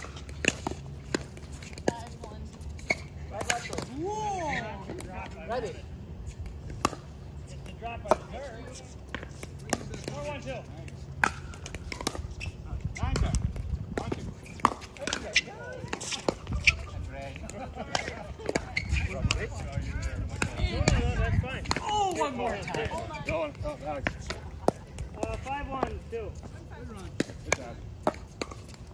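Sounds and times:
people talking: 1.8s - 2.6s, 15.0s - 27.8s
ball bouncing on court: 10.8s - 16.8s.

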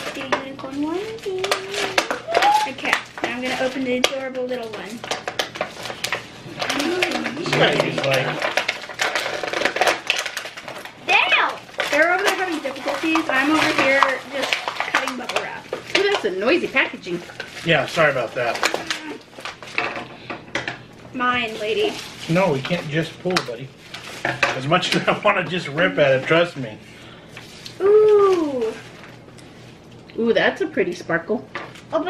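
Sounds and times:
plastic packaging crinkling: 0.0s - 30.1s, 31.5s - 32.0s.

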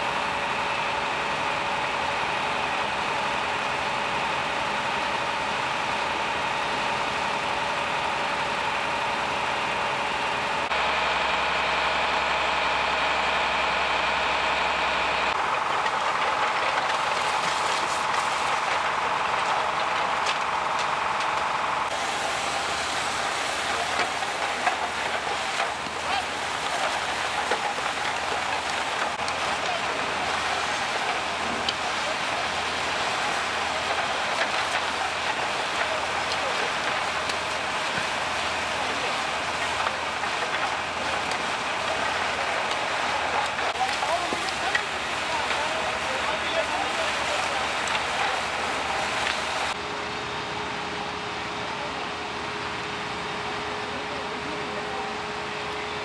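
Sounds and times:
fire engine pump hum and whine: 0.0s - 56.0s
crackles and ticks: 15.3s - 21.6s, 22.6s - 49.8s.

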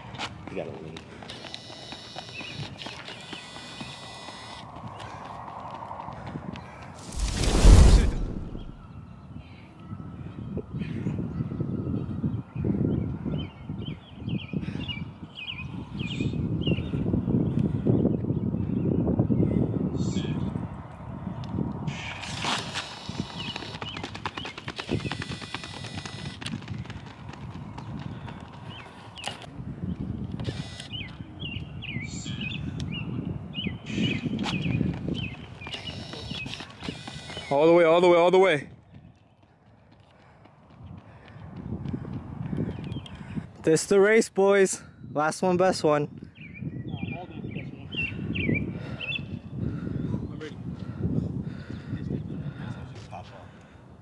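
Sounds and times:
footfalls slapping rubber track: 0.0s - 7.2s, 22.3s - 29.6s, 34.4s - 37.6s, 38.9s - 43.2s
bird chirping: 30.8s - 37.7s.

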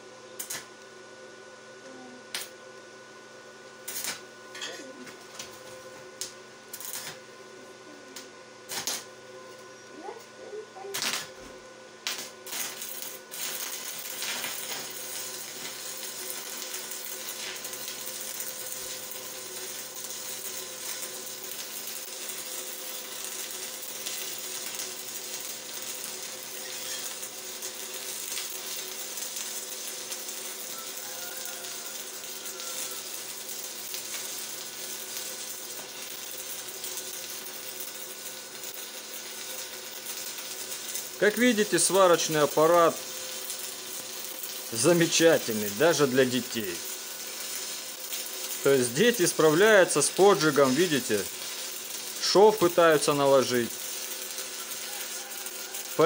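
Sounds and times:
welding arc crackling: 0.0s - 0.9s, 2.3s - 2.6s, 3.7s - 56.0s
welding arc pops: 0.4s - 0.9s, 2.3s - 2.6s, 3.6s - 7.2s, 8.1s - 9.2s, 10.9s - 56.0s.

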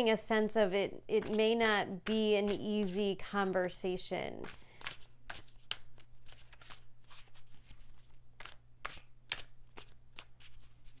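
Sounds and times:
cards being shuffled: 4.4s - 11.0s.

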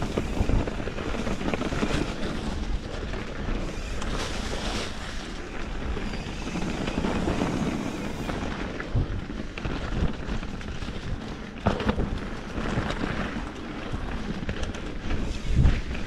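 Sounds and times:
bike tyres rolling on leaves and dirt: 0.0s - 16.0s
wind buffeting microphone: 0.0s - 16.0s.

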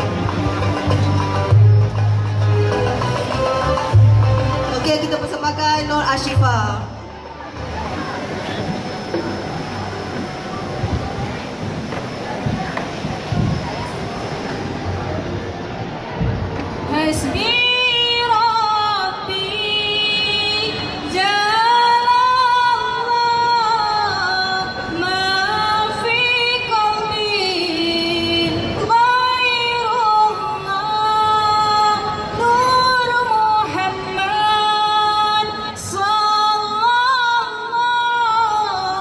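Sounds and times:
woman singing unaccompanied: 16.9s - 39.0s.

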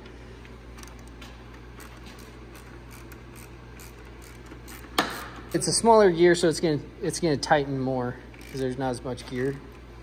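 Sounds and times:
steady low hum: 0.0s - 10.0s
wrench clicking: 1.8s - 5.4s, 8.3s - 8.8s.

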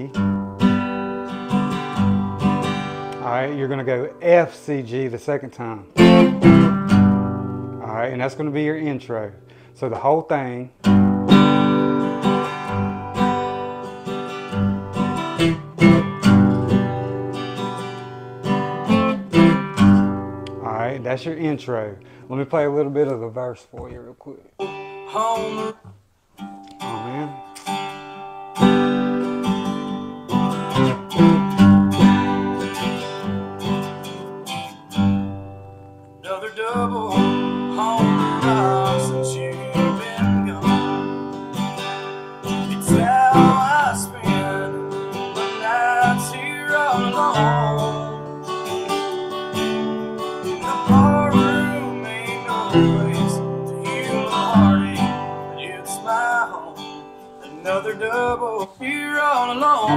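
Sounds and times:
acoustic guitar strumming: 0.0s - 59.9s
man singing: 25.0s - 25.9s, 26.8s - 27.4s, 36.2s - 41.2s, 42.5s - 59.9s.

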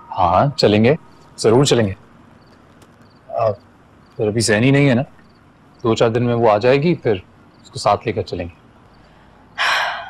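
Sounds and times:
faint cricket chirps: 0.0s - 10.0s.

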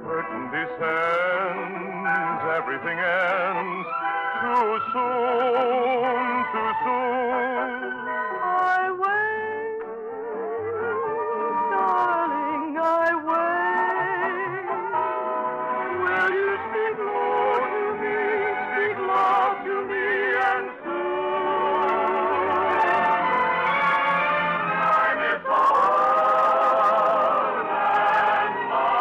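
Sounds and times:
orchestral music: 0.0s - 9.1s, 10.0s - 29.0s.

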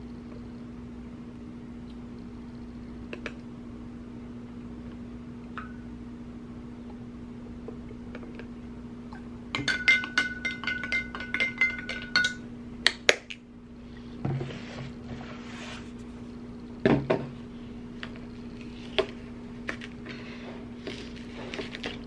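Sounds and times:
spoon clinking against glass: 9.6s - 12.4s.

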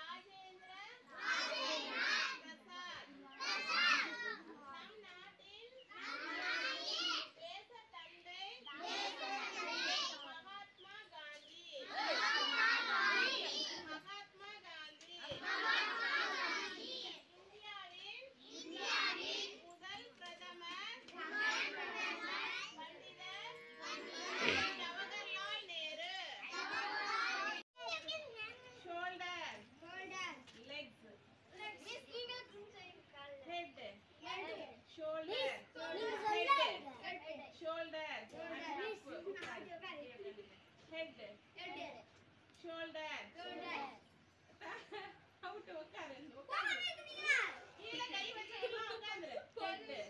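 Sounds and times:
children speaking together: 0.0s - 30.6s, 31.5s - 37.7s, 38.3s - 42.6s, 43.2s - 50.0s.

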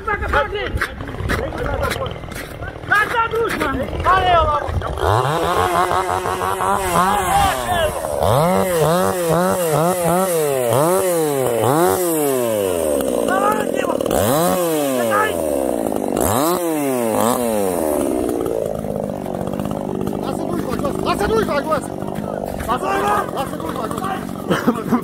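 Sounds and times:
chainsaw revving: 0.1s - 25.0s.

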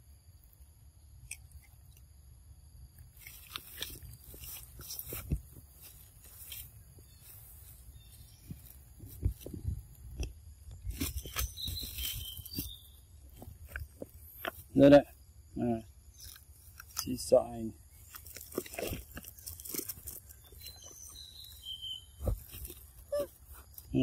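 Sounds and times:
monkey chewing food: 18.1s - 21.4s, 22.2s - 23.7s.

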